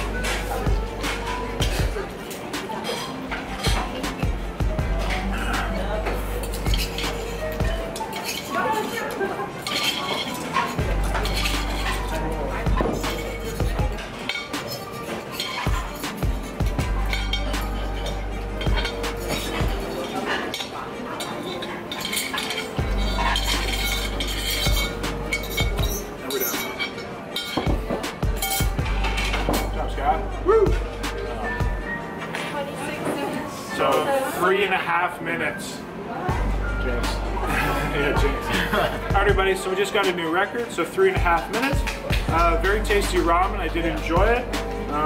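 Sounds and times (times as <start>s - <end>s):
music with deep bass line: 0.0s - 2.1s, 3.6s - 8.0s, 10.8s - 14.1s, 15.7s - 19.8s, 22.8s - 26.1s, 27.7s - 31.9s, 41.8s - 45.0s
utensils clinking against bowls: 0.0s - 45.0s.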